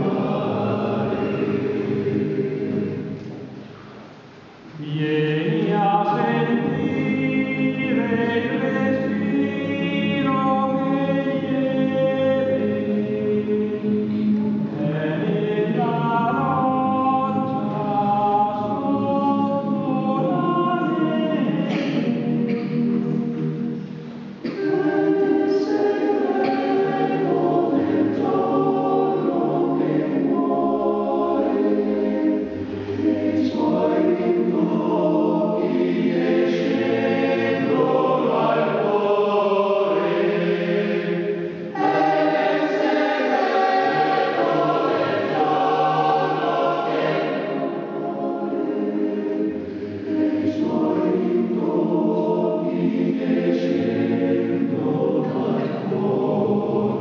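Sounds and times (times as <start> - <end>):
male choir singing: 0.0 - 3.6, 4.7 - 23.8, 24.4 - 57.0.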